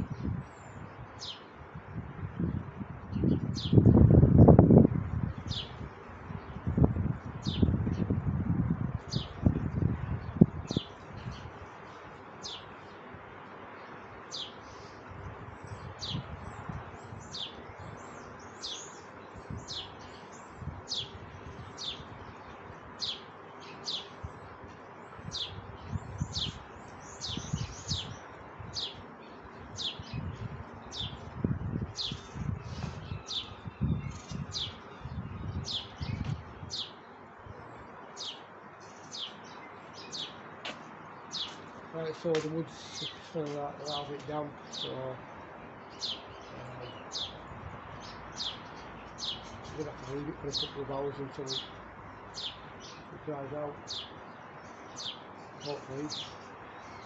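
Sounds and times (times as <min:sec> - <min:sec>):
small bird chirping: 0:45.9 - 0:57.0.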